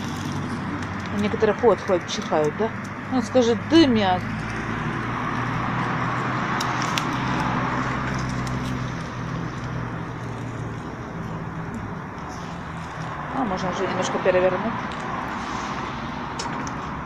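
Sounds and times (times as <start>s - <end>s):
wood fire crackling: 0.0s - 3.3s, 4.2s - 13.8s
vehicle engine humming: 0.0s - 17.0s.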